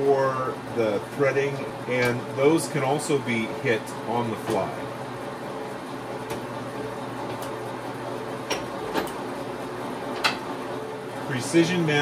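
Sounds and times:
lathe motor and gear hum: 0.0s - 12.0s.

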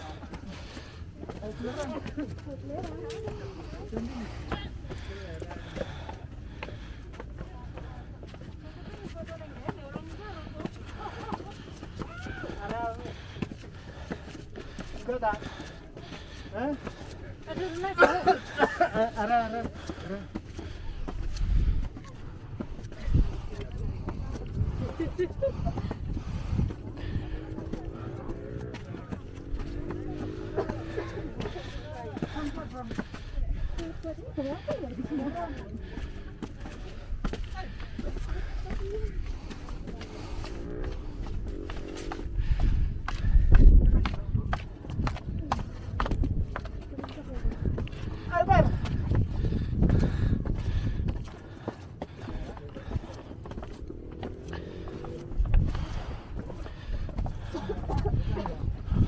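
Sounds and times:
footsteps on concrete steps: 0.0s - 59.0s
indistinct chatter of people: 0.0s - 59.0s
wind buffeting microphone: 20.7s - 59.0s.

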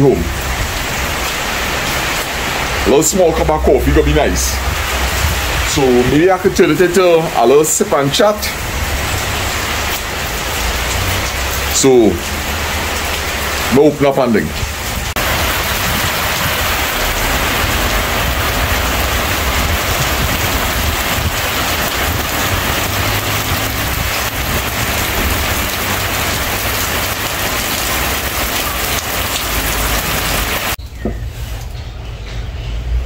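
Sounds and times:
rain falling: 0.0s - 30.8s.

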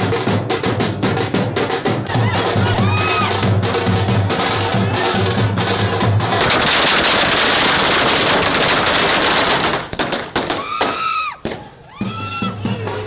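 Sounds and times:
metal street drums: 0.0s - 13.0s
firecrackers crackling: 2.2s - 12.1s.

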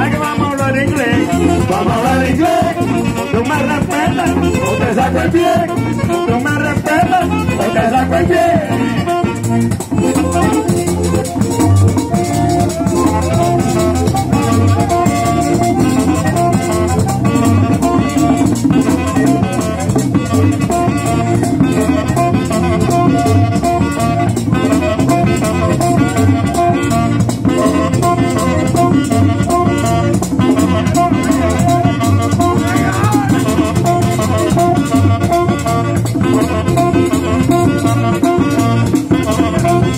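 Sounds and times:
button accordion: 0.0s - 39.9s
saxophone: 0.0s - 39.9s
tambora drum: 0.0s - 39.9s.

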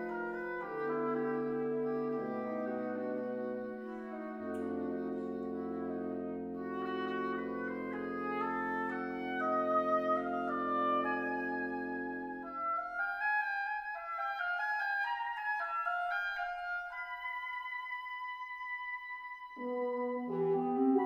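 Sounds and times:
held low chord: 0.0s - 12.6s
woodwind melody: 0.0s - 21.0s.

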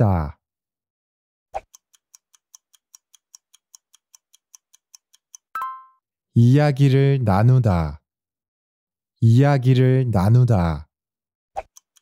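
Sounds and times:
clock ticking: 1.6s - 5.8s, 11.6s - 12.0s.

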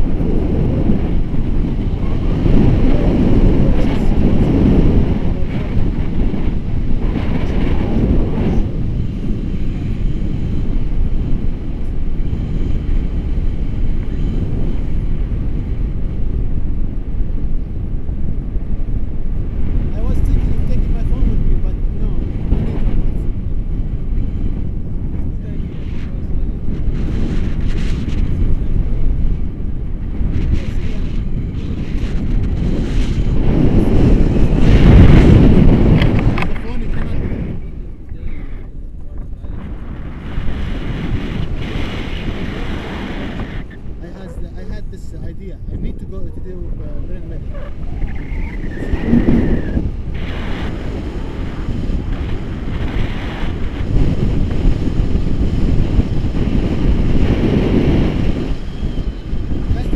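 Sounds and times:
wind buffeting microphone: 0.0s - 59.9s.

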